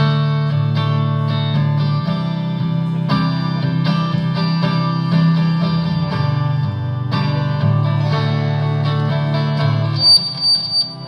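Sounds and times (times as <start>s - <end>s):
bass guitar low notes: 0.0s - 11.0s
electric guitars: 0.0s - 11.0s
high piercing tone: 10.0s - 11.0s.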